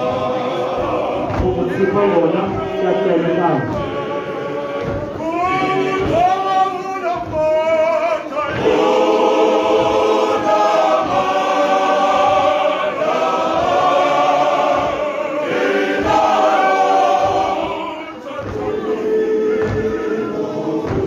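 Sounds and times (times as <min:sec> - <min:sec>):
male voice choir singing: 0:00.0 - 0:21.0.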